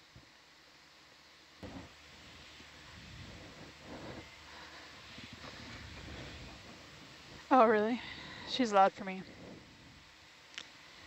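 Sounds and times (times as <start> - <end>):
faint steady hiss: 0.0 - 11.0
faint muffled sounds: 1.5 - 11.0.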